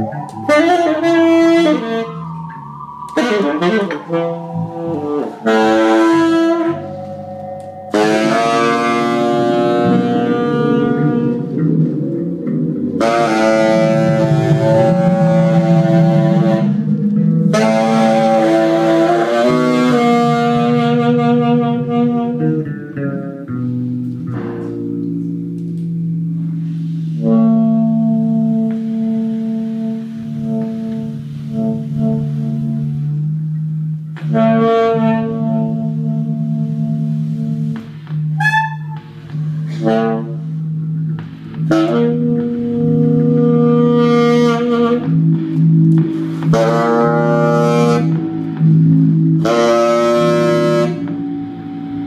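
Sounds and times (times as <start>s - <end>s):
fretless electric bass: 0.0s - 52.0s
quieter held tones: 0.0s - 52.0s
saxophone sustained notes: 0.0s - 52.0s.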